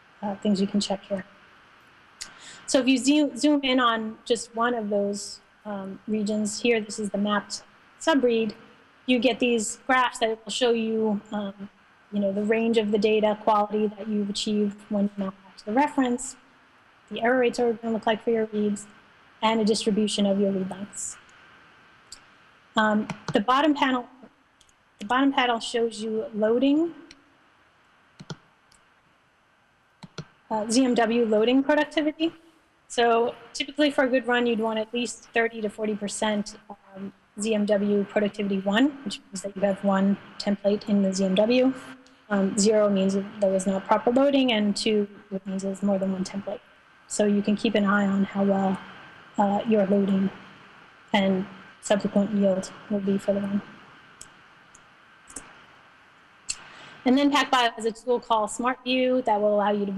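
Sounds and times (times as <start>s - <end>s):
faint hiss: 0.0s - 59.9s
computer mouse clicks: 23.0s - 23.4s, 28.2s - 28.8s, 30.0s - 30.4s.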